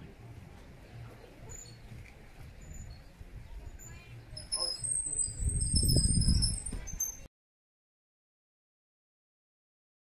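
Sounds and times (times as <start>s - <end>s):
faint high-pitched chirps: 1.1s - 7.3s
wind buffeting microphone: 1.7s - 7.3s.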